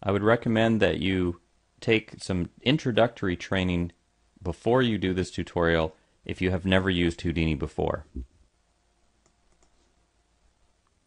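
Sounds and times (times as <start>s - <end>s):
faint clicks: 9.2s - 9.8s.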